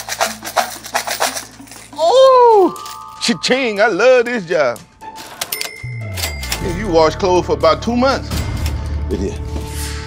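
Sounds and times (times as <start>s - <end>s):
coins rattling in plastic tub: 0.0s - 2.0s
background music: 0.0s - 10.0s.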